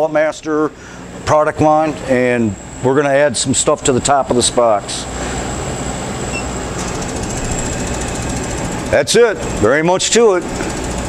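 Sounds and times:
machine fan whooshing hum: 0.0s - 11.0s.

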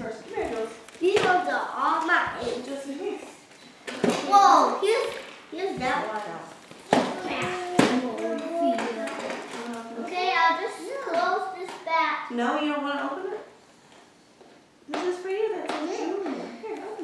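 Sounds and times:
children babbling and calling out: 7.0s - 12.3s.

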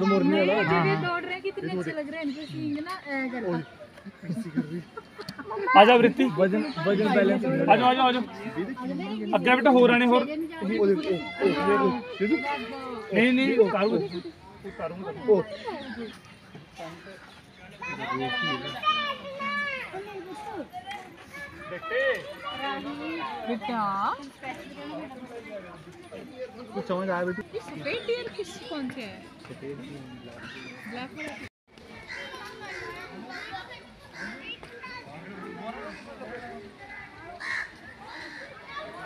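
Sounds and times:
faint voices: 0.0s - 39.0s.

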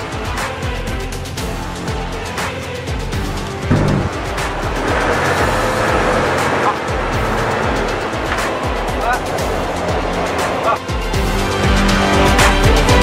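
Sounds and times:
action trailer music: 0.9s - 13.0s
rushing noise: 3.6s - 7.7s.

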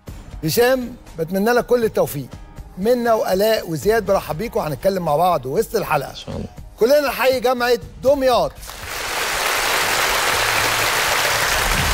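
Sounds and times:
audience applauding: 8.7s - 11.9s.

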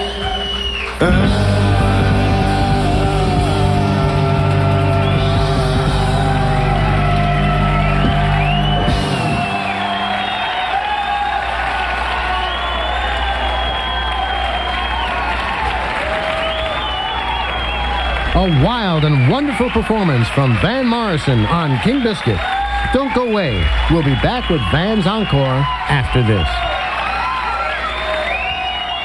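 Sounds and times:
audience applause and cheering: 0.0s - 29.0s
rock band chord: 1.0s - 10.4s.

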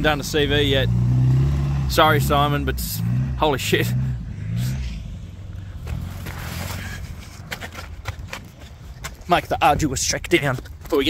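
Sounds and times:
off-road vehicle engine revving: 0.0s - 7.7s.

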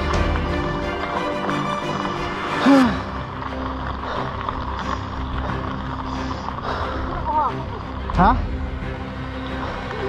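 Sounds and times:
background music: 0.0s - 10.0s
tyres rumbling on gravel: 0.0s - 10.0s
wind: 0.0s - 10.0s.

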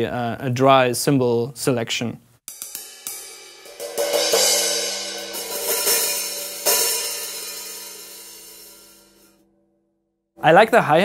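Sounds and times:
cymbals struck with drumsticks: 2.5s - 9.3s.

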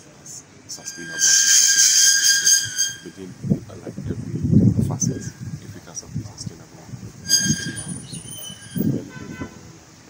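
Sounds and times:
high thin horn toot: 0.7s - 3.4s, 4.9s - 5.6s, 7.2s - 9.7s
low buzzy horn toot: 0.8s - 3.3s, 7.2s - 9.7s.

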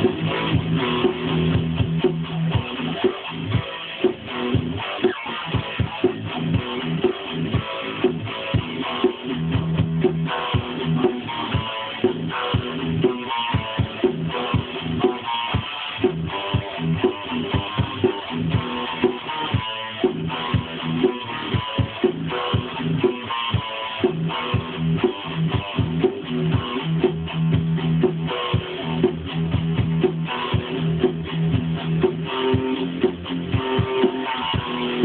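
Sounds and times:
guitar chords and notes: 0.0s - 35.0s
regular percussive hits: 0.0s - 35.0s.

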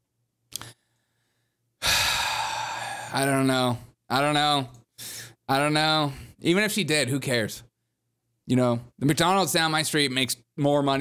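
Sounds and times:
man sighing heavily: 1.8s - 3.2s.

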